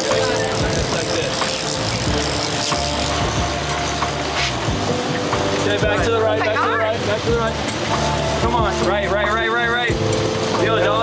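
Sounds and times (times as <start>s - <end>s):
boat engine running: 0.0s - 11.0s
wind and water: 0.0s - 11.0s.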